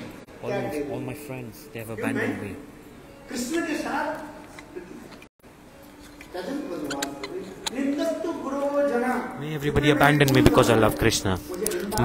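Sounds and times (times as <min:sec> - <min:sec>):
man speaking: 0:00.4 - 0:02.7, 0:06.4 - 0:12.0.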